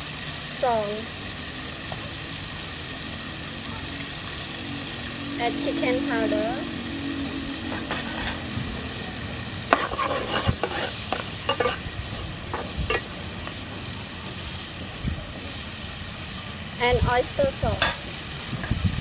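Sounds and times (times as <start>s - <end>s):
food sizzling in a frying pan: 0.0s - 19.0s
metal spatula scraping pan: 7.2s - 8.5s, 9.6s - 11.9s.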